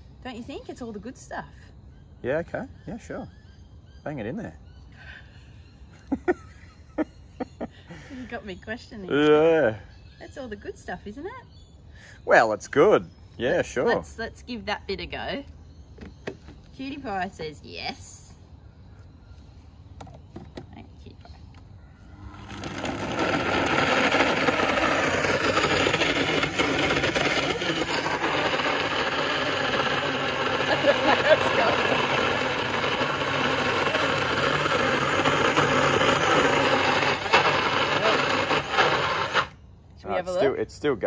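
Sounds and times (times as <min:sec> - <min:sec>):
blender motor running: 0:22.0 - 0:39.6.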